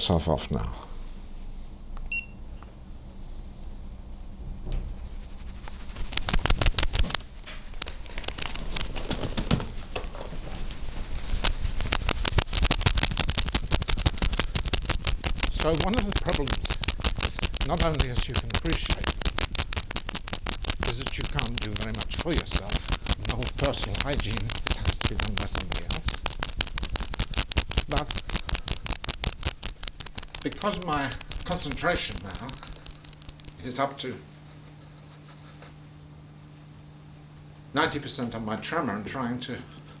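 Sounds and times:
rapid knocking and rattling: 5.4 - 33.6.

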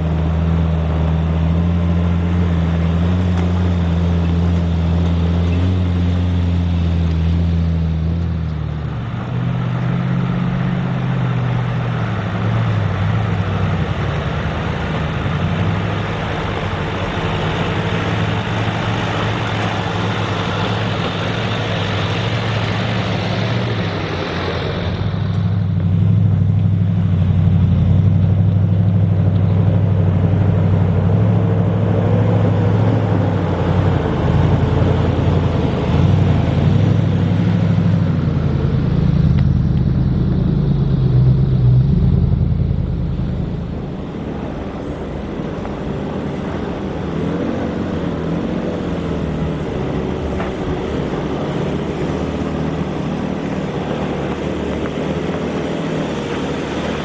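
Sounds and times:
engine drone passing: 0.0 - 57.0
four-wheel drive engines climbing: 0.0 - 57.0.

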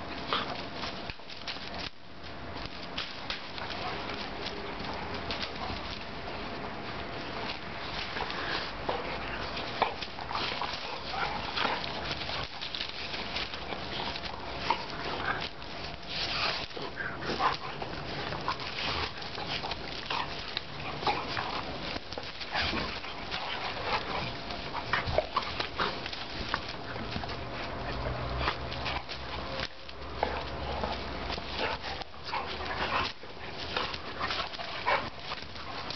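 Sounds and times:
dogs play-fighting: 0.0 - 35.9.

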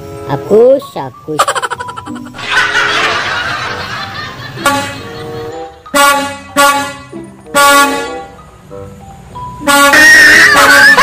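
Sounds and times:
truck air horn honking: 4.6 - 5.2, 5.9 - 8.4, 9.6 - 11.0
wavering horn tune: 9.6 - 11.0.

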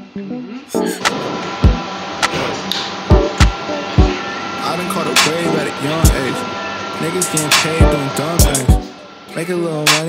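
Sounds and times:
background music with deep beat: 1.0 - 2.4, 3.1 - 4.2, 7.2 - 8.9.

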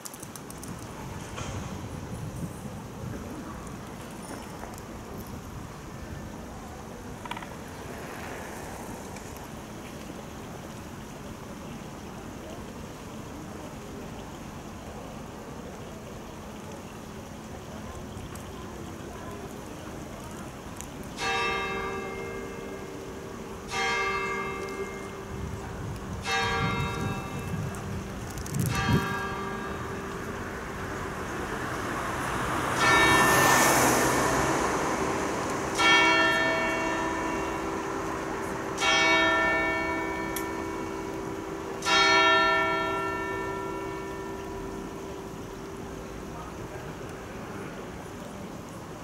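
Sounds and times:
higher church bell striking: 21.2 - 25.6, 26.2 - 27.8, 28.7 - 30.3, 32.7 - 35.0, 35.7 - 45.6
deeper church bell striking: 26.2 - 27.8, 35.7 - 45.6
car driving past: 29.9 - 38.8.

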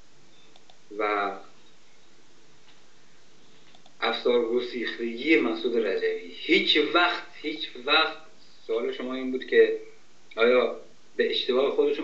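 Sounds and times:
low steady line hiss: 0.0 - 12.0
faint ticks: 0.4 - 0.8, 3.6 - 4.0.

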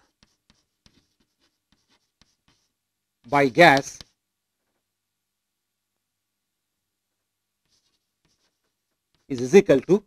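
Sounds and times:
chalk writing on chalkboard: 0.0 - 2.8, 3.5 - 4.2, 7.6 - 9.6.

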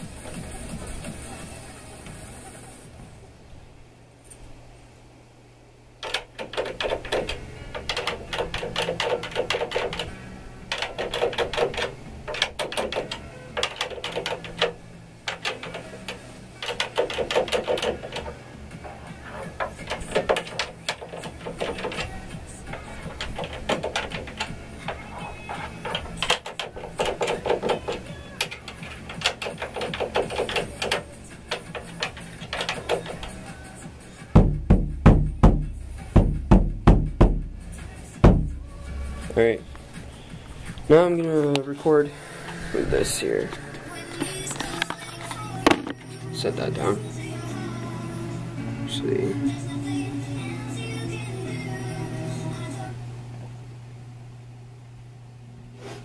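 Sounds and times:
rapid light tapping: 6.0 - 41.6
muffled bass drum hits: 34.4 - 39.4.

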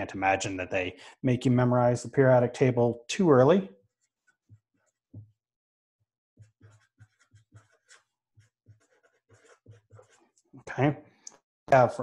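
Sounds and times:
marker writing on paper: 3.9 - 5.4, 6.4 - 10.6.

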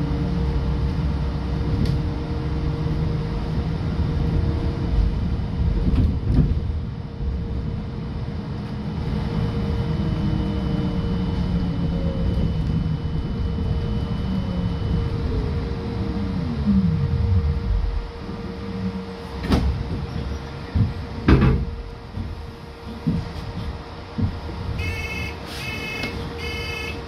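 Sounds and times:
trolleybus interior rumble: 0.0 - 27.0
thin high whine: 24.8 - 27.0.

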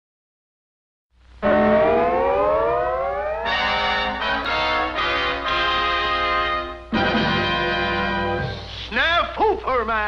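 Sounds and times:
rising siren-like wail: 1.4 - 5.4.

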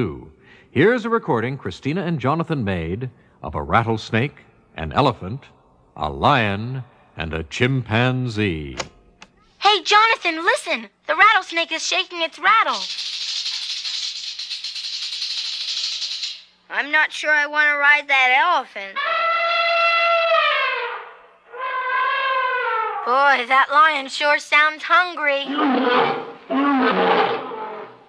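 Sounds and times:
rattlesnake rattle buzzing: 12.7 - 16.5
lion roaring: 25.5 - 28.0.

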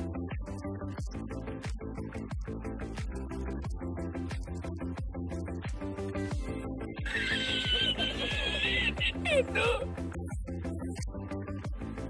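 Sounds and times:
music with kick-drum beat: 0.0 - 12.0
man laughing high-pitched: 7.1 - 9.9.

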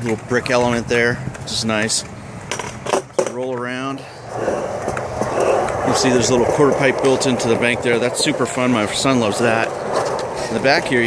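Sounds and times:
skateboard wheels rolling on concrete: 0.0 - 11.0.

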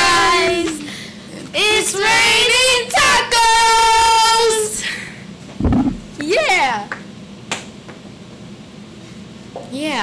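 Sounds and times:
room noise hum: 0.0 - 10.0.

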